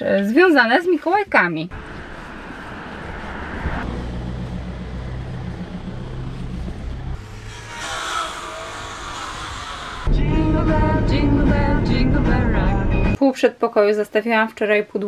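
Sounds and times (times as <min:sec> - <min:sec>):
background traffic noise: 0:00.0 - 0:10.0
passing vehicle: 0:01.7 - 0:08.2
vehicle engine humming: 0:01.7 - 0:13.2.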